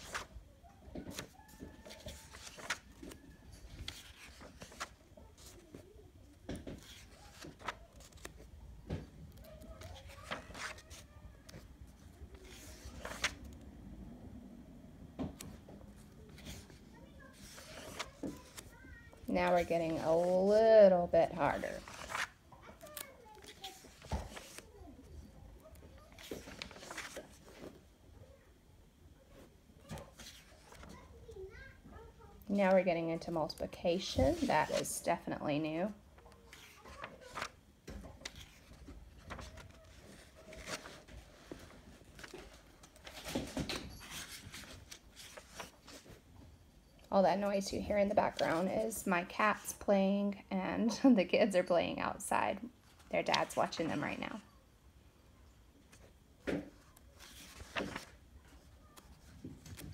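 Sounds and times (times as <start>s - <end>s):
paper page turning: 0.0s - 0.3s, 1.0s - 5.8s, 6.6s - 8.5s, 9.3s - 11.6s, 12.3s - 13.5s, 15.4s - 20.6s, 21.3s - 24.8s, 25.7s - 27.8s, 29.9s - 31.0s, 36.3s - 46.2s, 56.8s - 59.9s.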